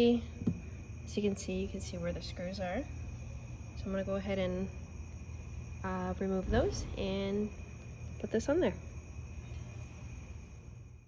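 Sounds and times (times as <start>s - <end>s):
low hum: 4.6s - 11.0s
high-pitched whine: 6.4s - 8.6s.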